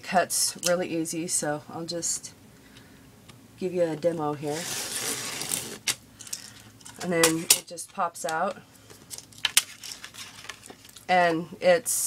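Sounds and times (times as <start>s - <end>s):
cutter blade scraping paper: 4.5s - 6.0s.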